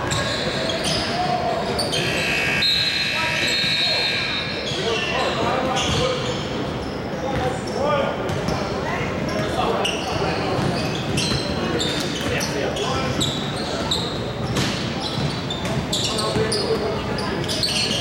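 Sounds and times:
sneakers squeaking: 0.0 - 18.0.

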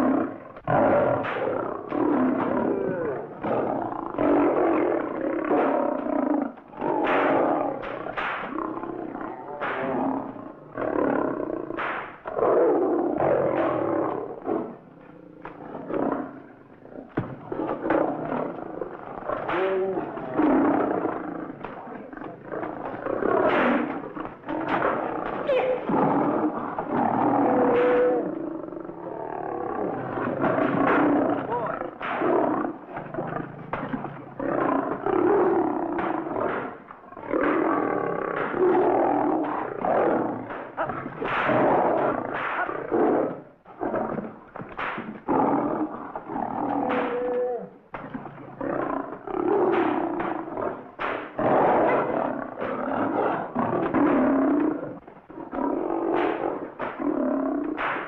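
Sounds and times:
lions roaring and snarling: 0.0 - 58.0.

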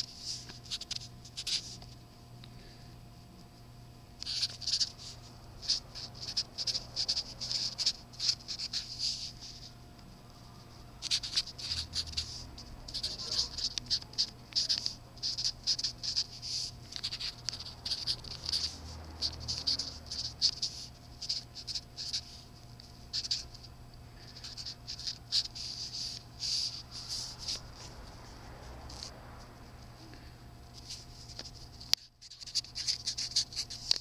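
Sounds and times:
pen scratching on paper: 4.2 - 9.7, 10.4 - 23.7, 24.3 - 29.2, 32.3 - 34.0.

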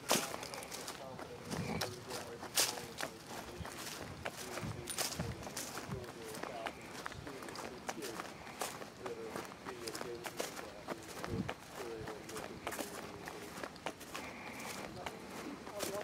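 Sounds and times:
footsteps crunching through leaves: 0.0 - 16.0.

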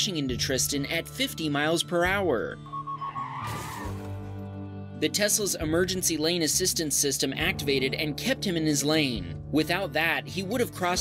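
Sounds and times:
background music: 0.0 - 11.0
car tyres skidding: 2.6 - 4.4.

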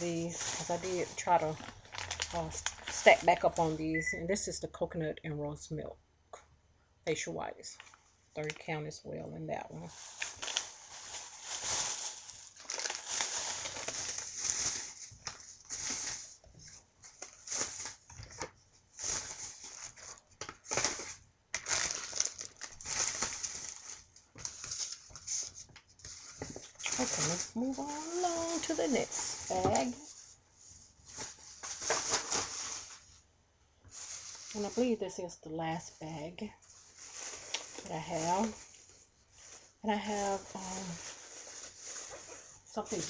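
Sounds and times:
plastic bag crinkling: 0.0 - 4.1, 9.6 - 33.2, 33.9 - 35.0, 35.9 - 43.0.

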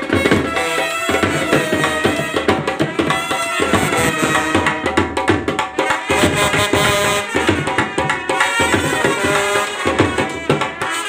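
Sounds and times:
snare drum: 0.0 - 11.0
trumpets and clarinet melody: 0.0 - 11.0.

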